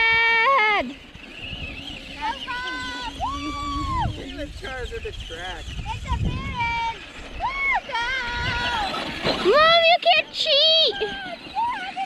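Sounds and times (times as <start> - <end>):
high-pitched voices shouting: 0.0 - 1.0, 2.0 - 4.6, 5.9 - 12.0.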